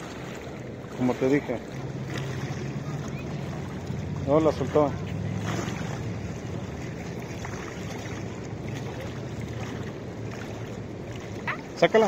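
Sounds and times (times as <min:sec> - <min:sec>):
low steady rumble: 0:00.0 - 0:12.0
small waves lapping on concrete: 0:00.0 - 0:12.0
wind buffeting microphone: 0:00.0 - 0:12.0.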